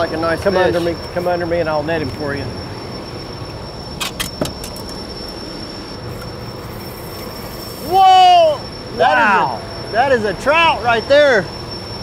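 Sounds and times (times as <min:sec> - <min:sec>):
thin high-pitched whine: 0:00.0 - 0:12.0
wind: 0:00.0 - 0:12.0.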